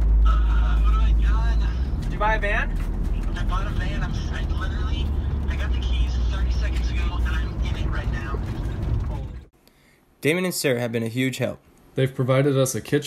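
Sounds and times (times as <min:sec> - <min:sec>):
engine and tyre rumble: 0:00.0 - 0:09.5
voices: 0:00.2 - 0:09.5.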